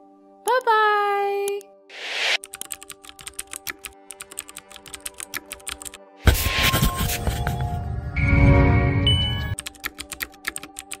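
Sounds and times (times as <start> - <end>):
keyboard typing clicks: 2.4 - 6.0, 9.5 - 11.0
music swell: 6.5 - 9.6.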